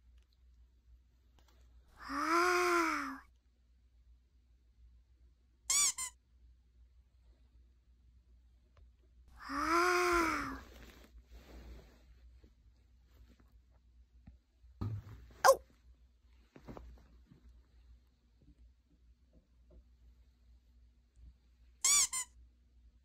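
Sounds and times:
dog whining: 0:15.4 - 0:15.6.

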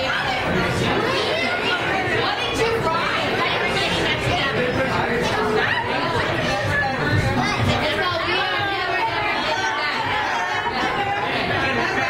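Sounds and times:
crowd of diners chattering: 0:00.0 - 0:12.0.

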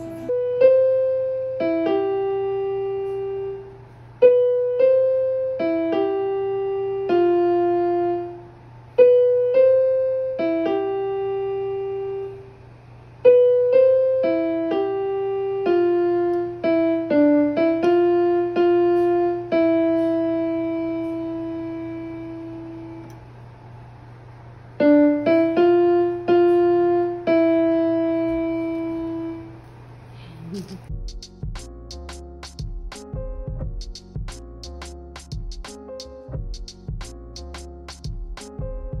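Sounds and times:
electronic keyboard piano note: 0:00.0 - 0:12.6, 0:13.2 - 0:23.2, 0:24.8 - 0:29.7, 0:30.9 - 0:39.0.

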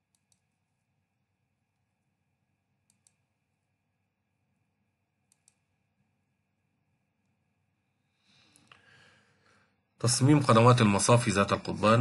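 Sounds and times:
computer mouse clicks: 0:00.0 - 0:00.6, 0:02.8 - 0:03.3, 0:05.2 - 0:05.7.

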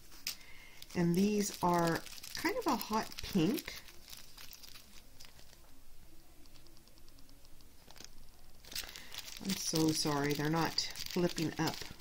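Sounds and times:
plastic bags crinkling: 0:00.0 - 0:05.8, 0:06.4 - 0:12.0.

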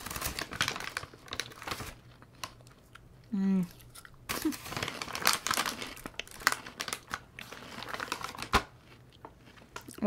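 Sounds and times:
crunchy snacks rustling: 0:00.0 - 0:03.0, 0:03.6 - 0:10.0
plastic snack bag crinkling: 0:00.0 - 0:03.0, 0:03.7 - 0:10.0.

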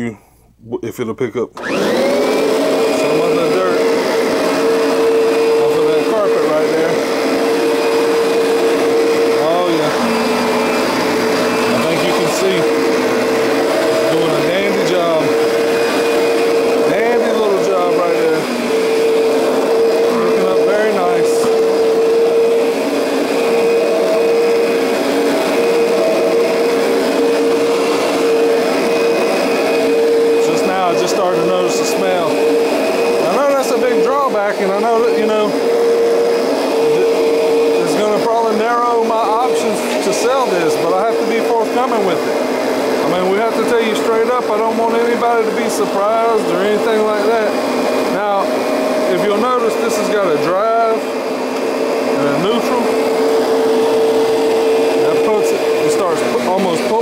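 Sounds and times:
vacuum cleaner running: 0:01.6 - 0:57.0.

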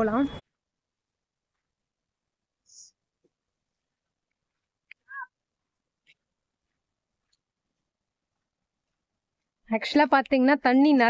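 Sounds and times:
short animal call: 0:05.0 - 0:05.3.

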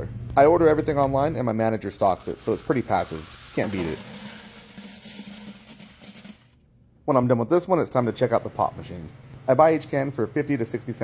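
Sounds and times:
coins pouring into plastic bucket: 0:03.1 - 0:06.6.

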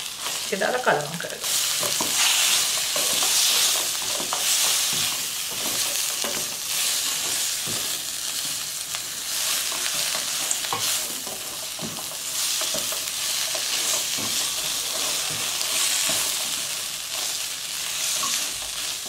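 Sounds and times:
mushrooms sizzling in a wok: 0:00.0 - 0:19.0
spatula scraping a pan: 0:01.4 - 0:08.4, 0:09.2 - 0:19.0.

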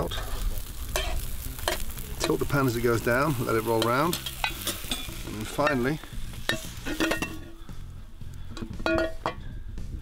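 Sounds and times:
metal spatula scraping a pan: 0:00.0 - 0:07.7
omelette sizzling in a frying pan: 0:00.0 - 0:07.7.

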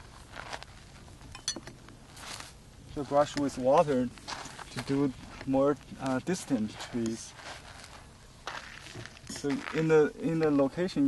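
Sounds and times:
faint handling noises: 0:00.0 - 0:10.8.

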